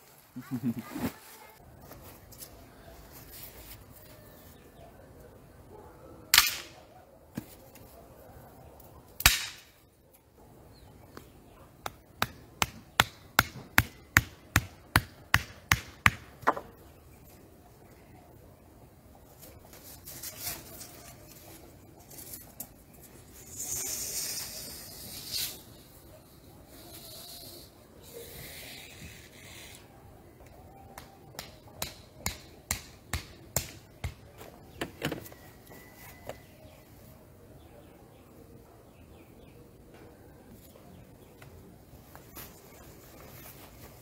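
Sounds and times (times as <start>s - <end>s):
wooden stake being hammered: 9.2s - 9.7s, 11.8s - 16.7s, 31.0s - 34.2s.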